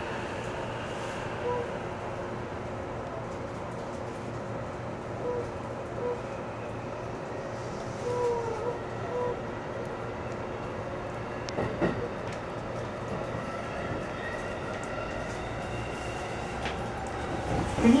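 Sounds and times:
electric train rumbling: 0.0s - 18.0s
train wheel clacks: 11.4s - 13.3s.

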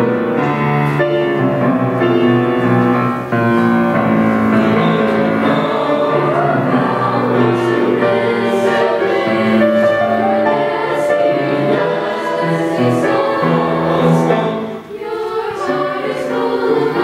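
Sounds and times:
choir singing in harmony: 0.0s - 17.0s.

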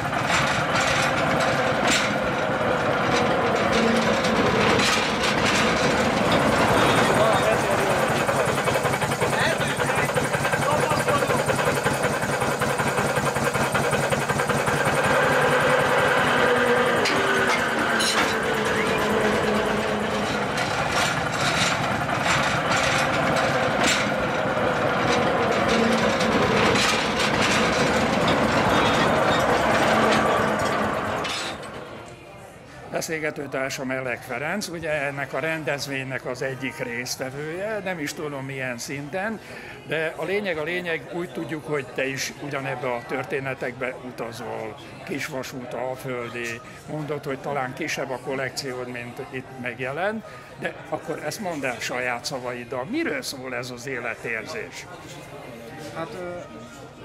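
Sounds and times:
rail vehicle rumbling on track: 0.0s - 10.6s, 11.6s - 31.9s
wheels clicking: 0.0s - 32.1s.

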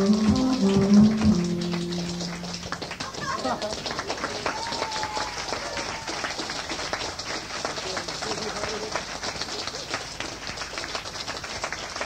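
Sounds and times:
live band ending song: 0.0s - 3.0s
low crowd noise: 0.0s - 12.0s.

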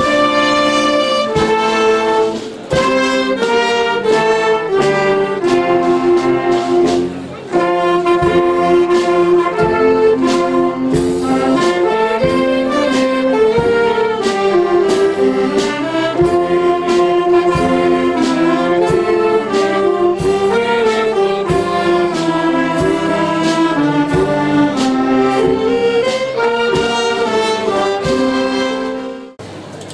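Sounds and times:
brass melody: 0.0s - 29.4s
march drum beat: 0.0s - 29.4s.

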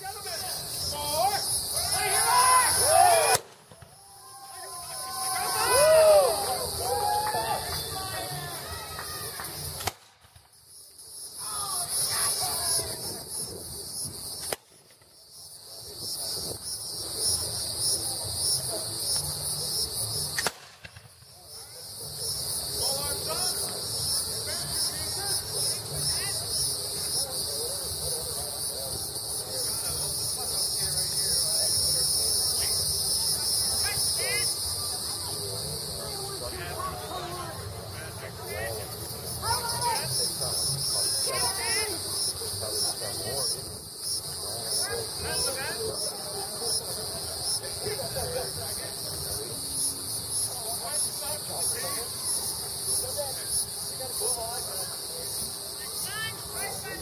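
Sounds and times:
faint voices: 0.0s - 10.0s, 11.0s - 57.0s
insects chirring: 0.0s - 57.0s
gunshots: 9.8s - 10.4s, 20.4s - 21.3s.

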